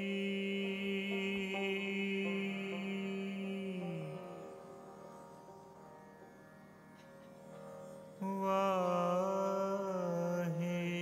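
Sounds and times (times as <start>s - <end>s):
harmonium chord: 0.0s - 11.0s.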